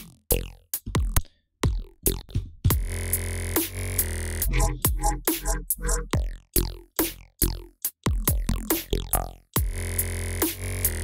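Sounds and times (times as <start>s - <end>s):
freeform synth bass: 0.0s - 11.0s.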